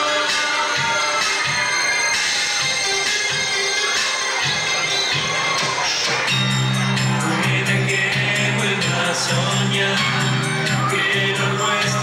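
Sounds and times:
crowd cheering: 0.0 - 12.0
electronic beat: 4.3 - 12.0
deep synth bass line: 6.3 - 12.0.

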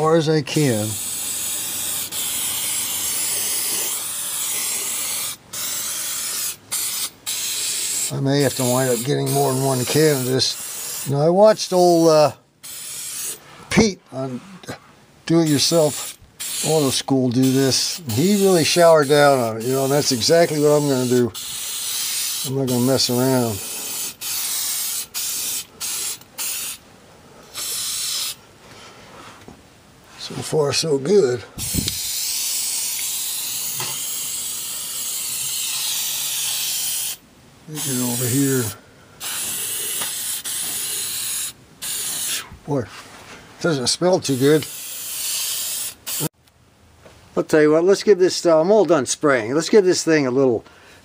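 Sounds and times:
aerosol spray hissing: 0.8 - 11.2, 12.6 - 13.4, 15.5 - 26.8, 27.5 - 28.4, 31.6 - 37.2, 37.8 - 42.5, 44.2 - 46.4.

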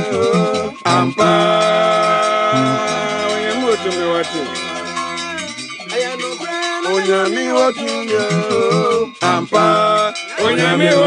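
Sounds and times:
gospel song: 0.0 - 11.0
low bass line: 2.6 - 3.5.

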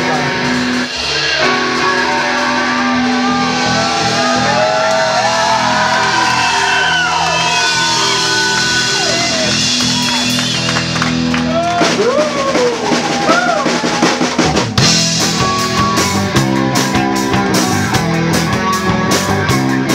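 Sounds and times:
electric guitars ringing chords: 0.0 - 11.8, 14.8 - 19.9
drums crashing: 0.0 - 19.9.

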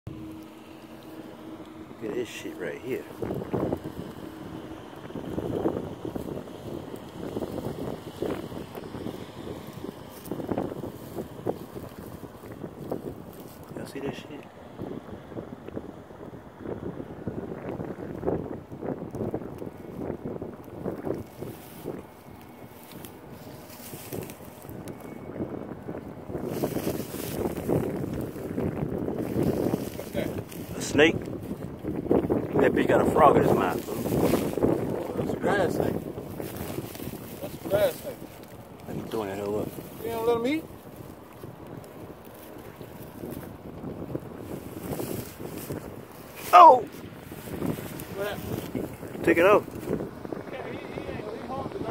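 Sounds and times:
wind buffeting microphone: 0.1 - 51.9.

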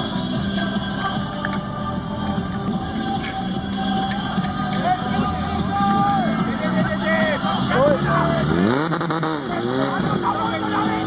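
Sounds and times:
people shouting: 2.9 - 11.0
pump engine revving: 3.4 - 11.0.

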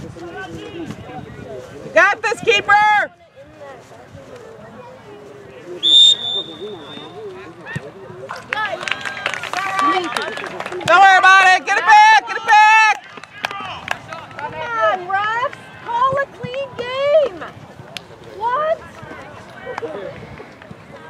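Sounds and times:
referee's whistle blast: 5.8 - 7.2.

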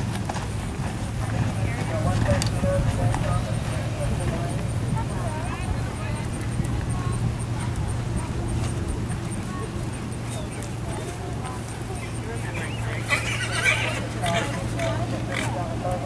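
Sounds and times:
faint distant voices: 0.0 - 16.0
steady low hum: 0.0 - 16.0
horse whinnying: 12.9 - 15.0.

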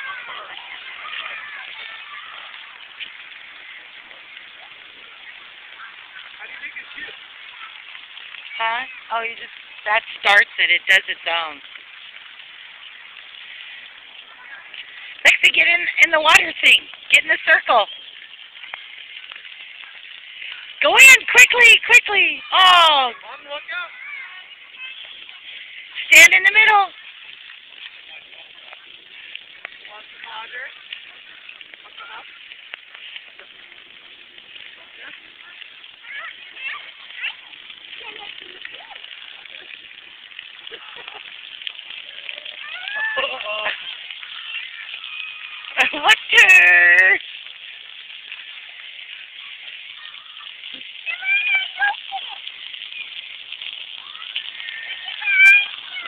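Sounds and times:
distant children calling: 0.0 - 9.9, 10.5 - 56.0
water jets spraying: 0.0 - 56.0.

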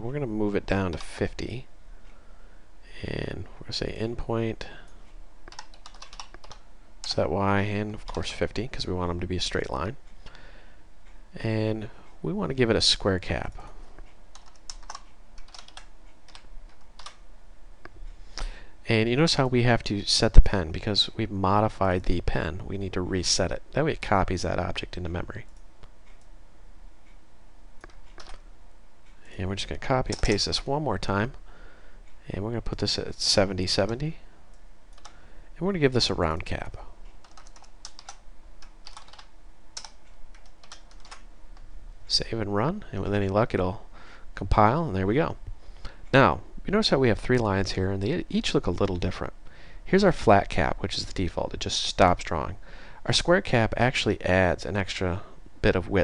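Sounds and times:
typing on computer keyboard: 5.5 - 7.2, 14.3 - 17.2, 27.9 - 28.4, 37.2 - 41.2.

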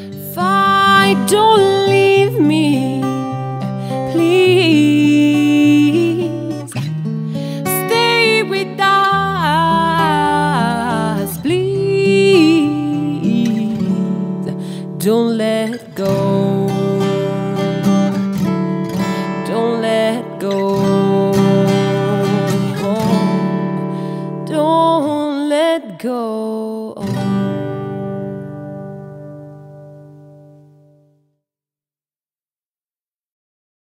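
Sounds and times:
acoustic guitar: 0.0 - 31.4.

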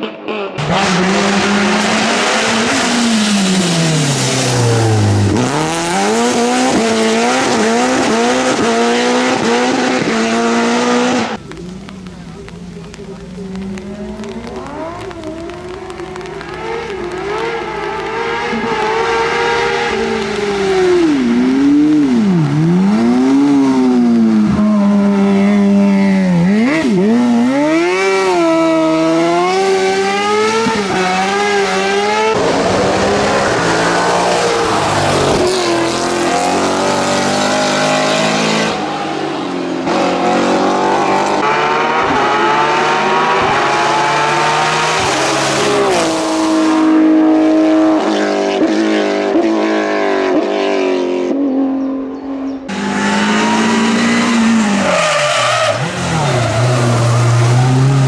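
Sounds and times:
racing car engines revving: 0.0 - 58.0.

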